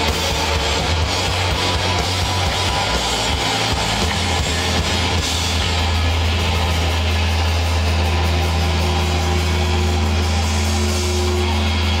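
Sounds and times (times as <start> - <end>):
electric guitar drone: 0.0 - 12.0
guitar feedback tone: 0.0 - 12.0.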